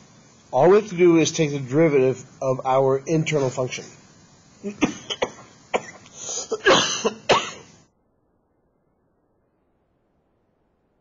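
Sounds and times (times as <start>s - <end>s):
man coughing: 4.7s - 7.8s.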